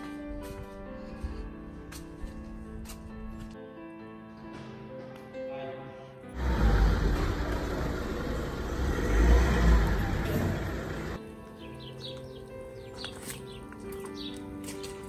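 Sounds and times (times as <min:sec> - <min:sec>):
heavy traffic rumble: 0:06.3 - 0:11.2
orchestral music: 0:06.3 - 0:11.2
birds chirping: 0:06.5 - 0:15.0.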